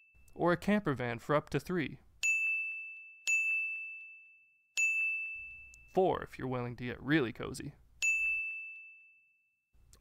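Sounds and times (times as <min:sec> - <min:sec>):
bell-like ding: 0:00.0 - 0:00.4, 0:02.2 - 0:05.9, 0:08.0 - 0:09.6.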